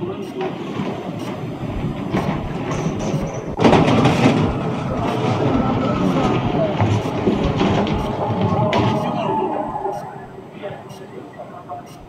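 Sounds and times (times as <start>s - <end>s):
floodwater rushing: 3.4s - 11.9s.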